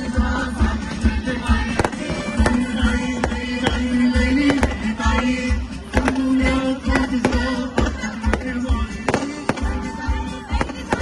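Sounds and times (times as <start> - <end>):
loud music with steady beat: 0.0 - 11.0
fireworks cracking: 1.3 - 11.0.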